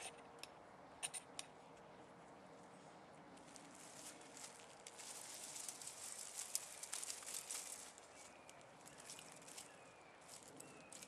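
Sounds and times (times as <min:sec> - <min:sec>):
plastic packet crinkling: 0:03.8 - 0:08.3.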